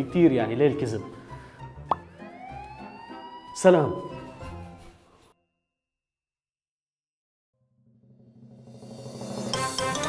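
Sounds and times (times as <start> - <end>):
quiet background music: 0.0 - 5.1.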